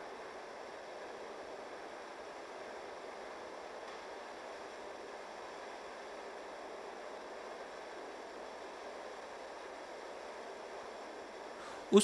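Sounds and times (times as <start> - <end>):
steady faint hiss: 0.0 - 12.0.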